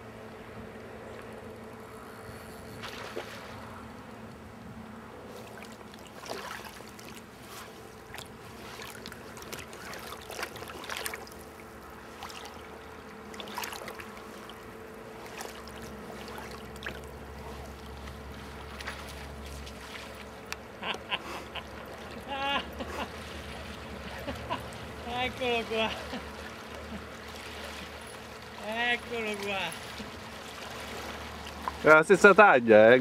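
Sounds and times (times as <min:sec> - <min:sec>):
river water running: 0:00.0 - 0:33.0
short water splashes: 0:02.7 - 0:03.9, 0:05.2 - 0:33.0.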